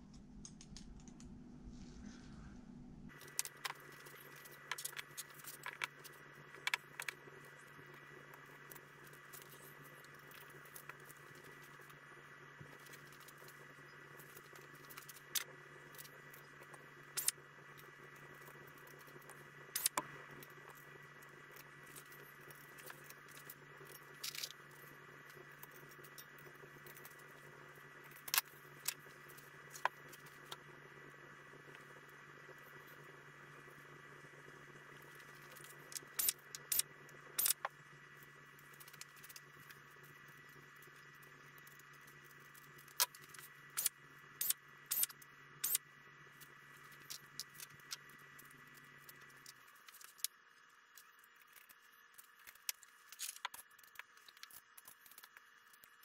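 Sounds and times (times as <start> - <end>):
steady hum: 0.0 - 56.0.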